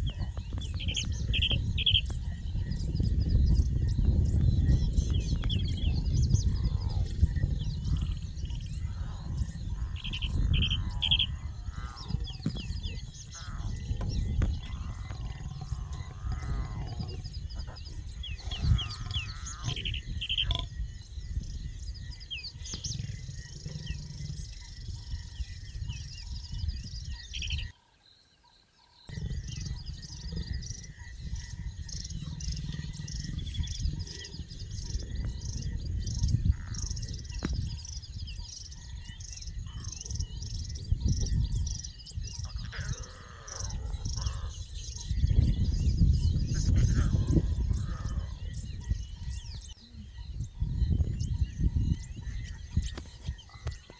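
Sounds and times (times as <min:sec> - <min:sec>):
small birds chirping: 0:00.0 - 0:53.9.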